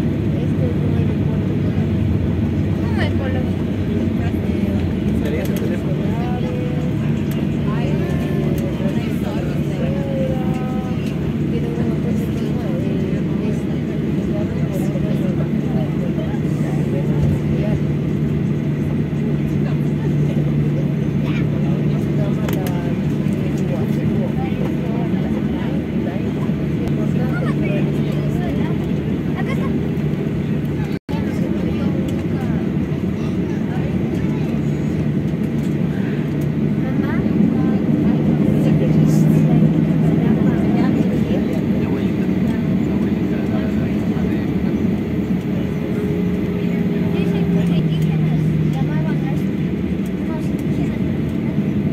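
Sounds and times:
jet engines and cabin drone: 0.0s - 51.9s
passengers murmuring: 0.0s - 51.9s.

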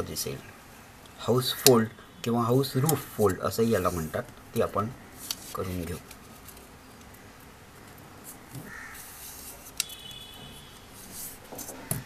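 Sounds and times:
bird call: 9.8s - 10.9s.

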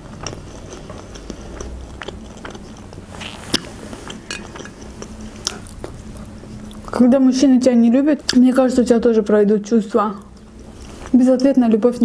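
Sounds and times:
person chewing food: 0.0s - 7.0s.

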